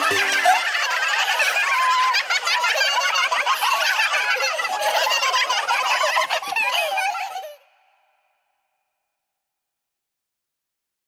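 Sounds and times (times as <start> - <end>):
sped-up cartoon voices chattering: 0.0 - 8.0.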